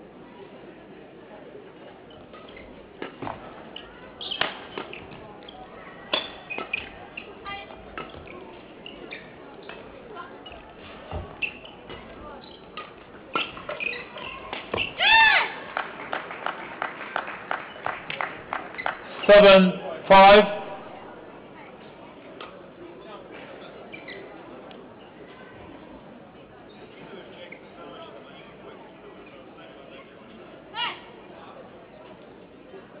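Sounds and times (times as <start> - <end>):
shoe squeak on floor: 2.1 - 3.2, 3.8 - 15.0, 23.9 - 24.4
rackets striking shuttlecock: 2.4 - 5.2.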